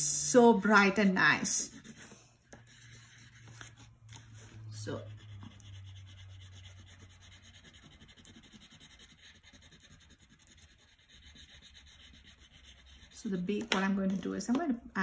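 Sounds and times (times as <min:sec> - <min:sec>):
crayon rubbing on paper: 0:00.8 - 0:13.5.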